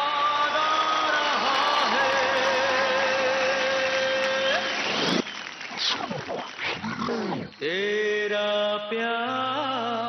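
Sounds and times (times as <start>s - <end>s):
stage music with sustained tones: 0.0s - 10.0s.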